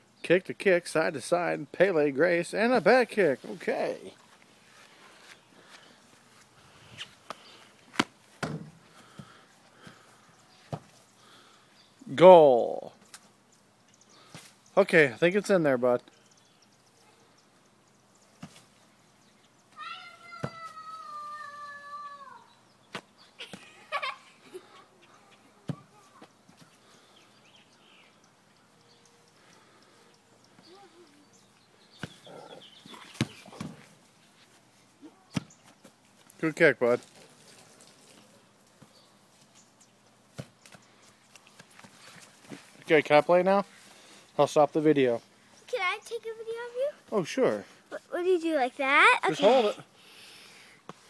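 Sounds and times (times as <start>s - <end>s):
soccer ball kicked on grass: 32.0s - 32.2s, 32.9s - 33.9s, 35.3s - 36.0s, 40.3s - 40.8s.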